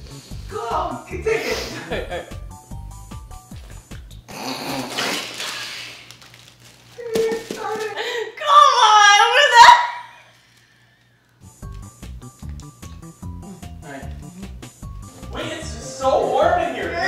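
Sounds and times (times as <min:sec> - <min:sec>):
women laughing loudly: 0:01.6 - 0:02.3
background music with a beat: 0:01.8 - 0:04.3.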